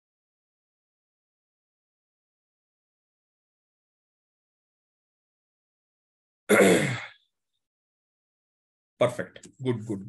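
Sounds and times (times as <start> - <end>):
person breathy vocal sound: 6.5 - 7.1.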